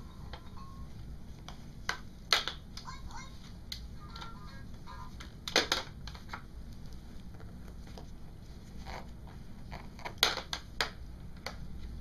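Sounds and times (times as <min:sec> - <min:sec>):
toy playing faint tune: 0:00.0 - 0:01.0.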